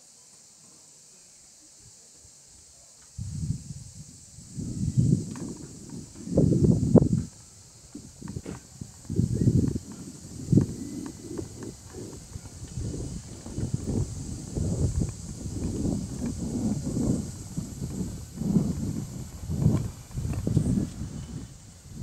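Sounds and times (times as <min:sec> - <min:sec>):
low uneven rumbling: 0:03.2 - 0:22.0.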